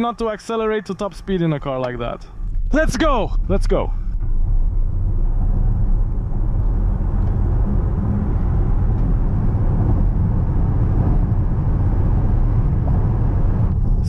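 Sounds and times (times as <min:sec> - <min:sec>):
wind noise in car cabin: 0:01.8 - 0:14.0.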